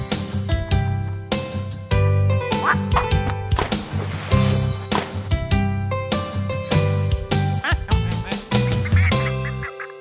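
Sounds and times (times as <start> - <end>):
upbeat children's music: 0.0 - 10.0.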